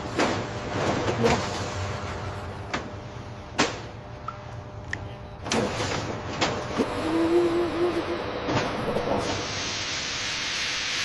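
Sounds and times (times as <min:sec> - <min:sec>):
factory machinery noise: 0:00.0 - 0:11.0
low machine hum: 0:00.0 - 0:11.0.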